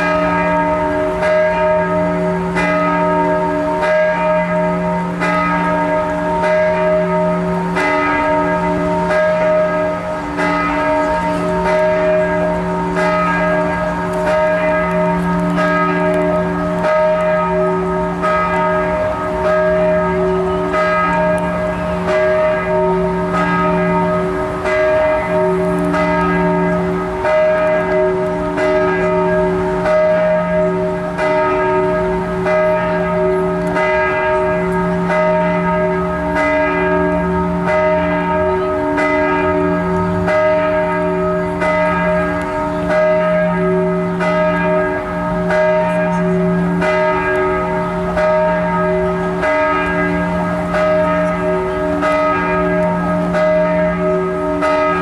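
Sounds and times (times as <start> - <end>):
large church bell ringing: 0.0 - 55.0.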